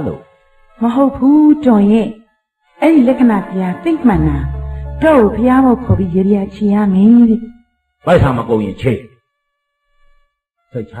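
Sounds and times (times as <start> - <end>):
person speaking: 2.9 - 7.4.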